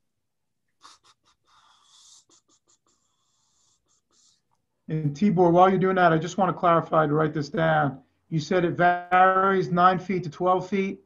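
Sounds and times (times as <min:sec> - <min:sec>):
faint breath-like hiss: 0:00.8 - 0:04.6.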